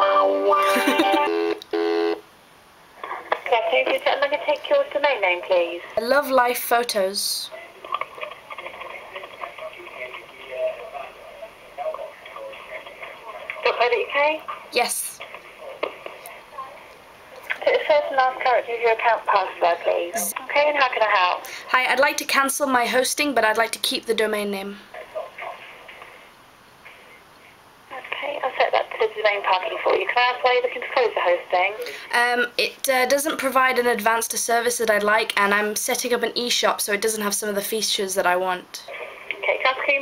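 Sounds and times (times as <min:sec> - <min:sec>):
person speaking over telephone: 0:03.0 - 0:16.6, 0:17.6 - 0:25.7, 0:27.9 - 0:34.2
person speaking over phone loudspeaker: 0:18.5 - 0:21.2.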